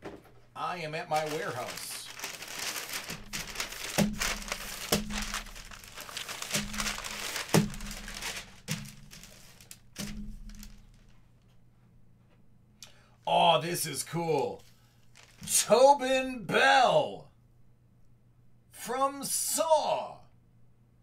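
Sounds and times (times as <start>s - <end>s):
packing paper crinkling: 1.0s - 11.2s, 14.3s - 15.7s.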